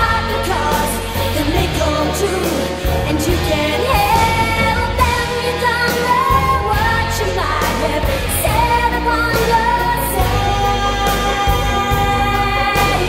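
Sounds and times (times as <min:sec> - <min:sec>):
band backing of synths and drums: 0:00.0 - 0:13.0.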